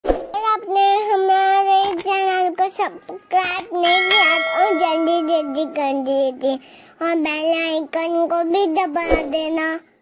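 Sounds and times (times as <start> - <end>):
child singing held notes: 0.4 - 10.0.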